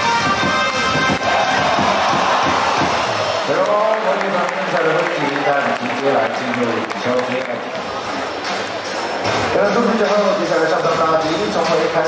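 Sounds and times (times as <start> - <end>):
crowd cheering: 0.0 - 10.1
cheer song over loudspeakers: 0.0 - 12.0.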